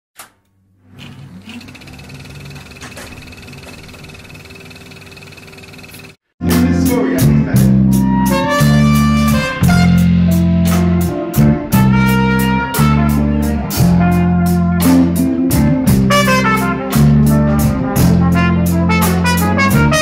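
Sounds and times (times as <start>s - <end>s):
live band jamming: 6.4s - 20.0s.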